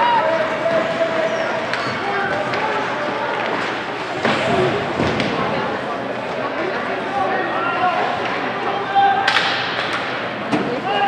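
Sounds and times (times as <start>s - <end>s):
people shouting: 0.0s - 1.2s
ice rink noise: 0.0s - 11.0s
hockey sticks and puck cracking: 0.4s - 6.6s, 9.2s - 10.9s.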